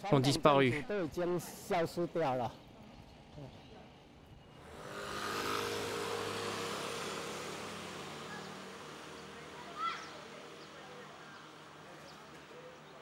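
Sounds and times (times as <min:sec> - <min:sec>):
vehicle passing: 0:04.5 - 0:12.9.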